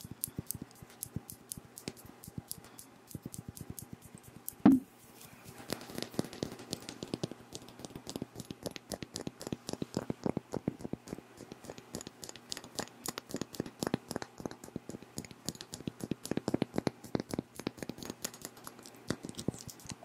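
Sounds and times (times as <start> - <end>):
loud low thump: 4.6 - 4.9.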